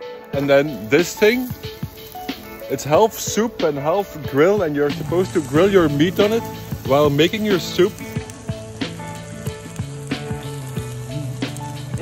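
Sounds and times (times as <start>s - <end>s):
background music: 0.0s - 12.0s
meat sizzling on a pan: 0.1s - 12.0s.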